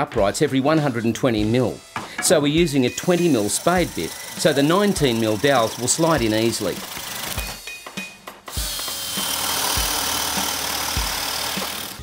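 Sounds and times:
cordless drill boring through wood: 0:02.7 - 0:07.5, 0:08.5 - 0:12.0
background music with slow beat: 0:07.0 - 0:12.0.

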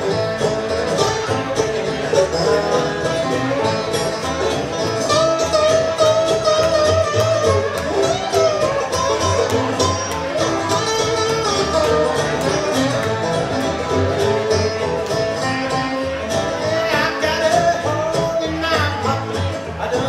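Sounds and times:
bowed fiddle melody: 0:00.0 - 0:19.9
acoustic guitar: 0:00.0 - 0:20.0
dobro and banjo picking: 0:00.0 - 0:20.0
upright bass: 0:00.0 - 0:20.0.

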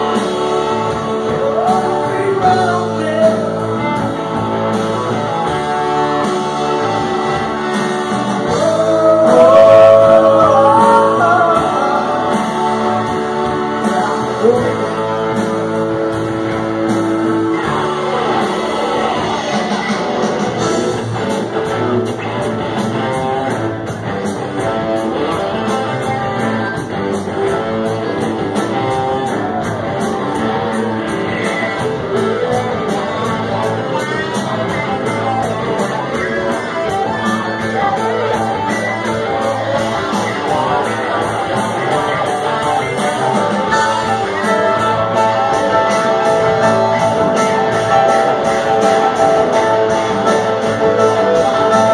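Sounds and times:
live rock band playing: 0:00.0 - 0:51.9.

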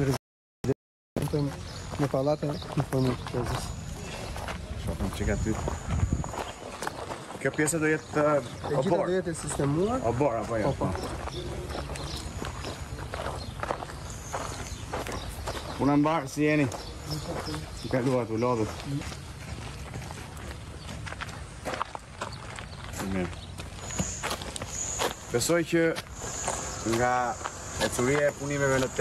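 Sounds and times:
people talking: 0:00.0 - 0:04.2, 0:04.8 - 0:05.7, 0:07.4 - 0:12.3, 0:15.8 - 0:19.0, 0:23.0 - 0:23.4, 0:25.3 - 0:26.0, 0:26.8 - 0:29.0
outdoor background noise: 0:00.0 - 0:29.0
footsteps: 0:01.2 - 0:29.0.

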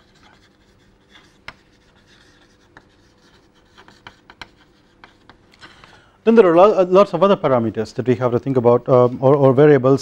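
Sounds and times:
chalk scratching on chalkboard: 0:00.0 - 0:05.5
chalk tapping on board: 0:00.0 - 0:05.5.

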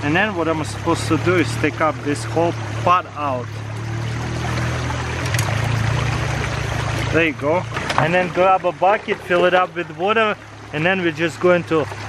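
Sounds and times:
low hum: 0:00.0 - 0:12.0
water rushing through metal sluice: 0:00.0 - 0:12.0.

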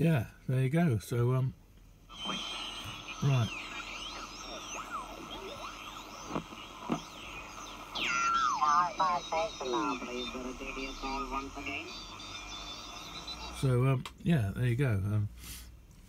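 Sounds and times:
garbled radio voice: 0:02.1 - 0:12.1
radio whistles sliding in pitch: 0:02.1 - 0:13.7
radio hiss: 0:02.1 - 0:15.7.

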